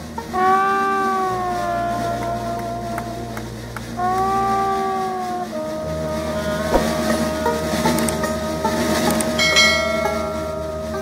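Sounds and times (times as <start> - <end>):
sousaphone bass: 0.5 - 8.6.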